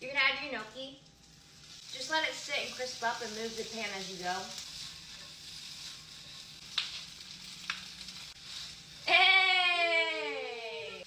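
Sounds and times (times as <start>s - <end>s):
food sizzling in a skillet: 0.0s - 11.0s.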